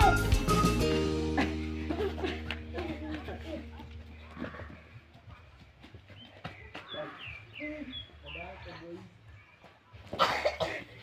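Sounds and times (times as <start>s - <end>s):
footsteps on grass: 1.8s - 7.6s
faint children's voices: 9.0s - 11.0s.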